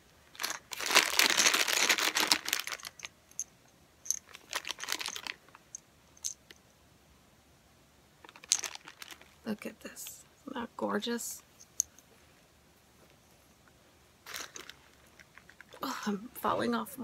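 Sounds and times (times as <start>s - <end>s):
plastic bags crinkling: 0.2s - 3.1s, 4.1s - 6.4s, 8.2s - 9.6s, 14.2s - 15.9s.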